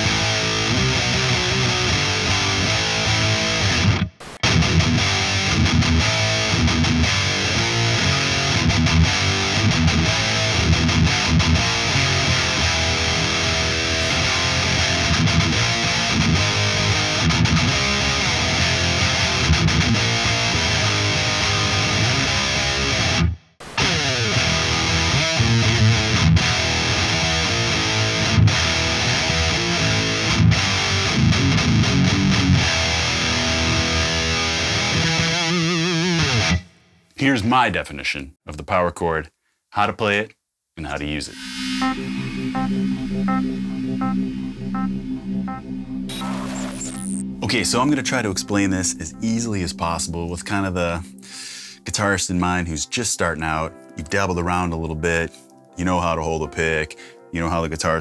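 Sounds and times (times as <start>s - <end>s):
distorted electric guitar riffs: 0.0s - 36.8s, 41.3s - 52.1s.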